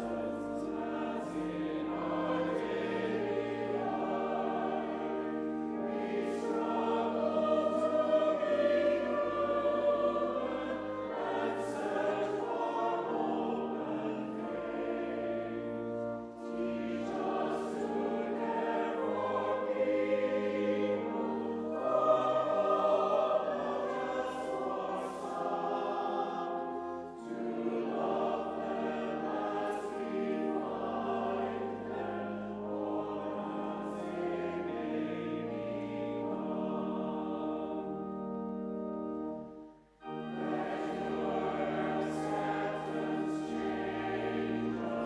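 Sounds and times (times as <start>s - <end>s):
congregation singing a hymn: 0.0s - 45.0s
organ: 0.0s - 45.0s.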